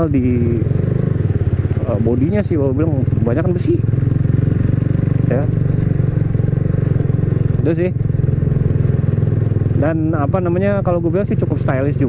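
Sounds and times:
motorcycle engine cruising: 0.0s - 12.0s.

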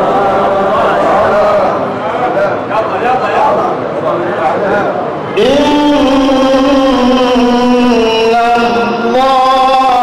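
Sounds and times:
man chanting melodically: 5.3s - 10.0s.

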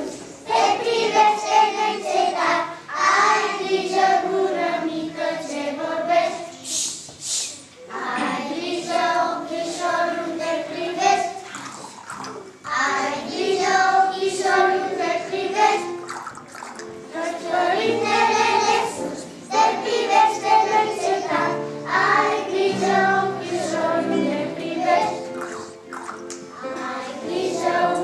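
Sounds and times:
children singing in unison: 0.0s - 6.6s, 7.9s - 16.1s, 16.9s - 25.8s, 26.6s - 28.0s.

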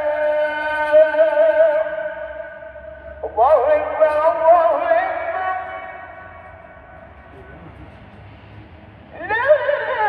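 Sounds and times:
man singing call to prayer: 0.0s - 2.2s, 3.2s - 6.1s.

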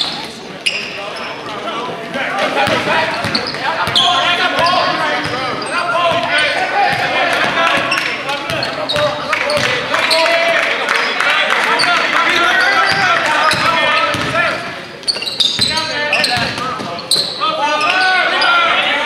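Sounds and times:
voices of players and spectators: 0.0s - 19.0s.

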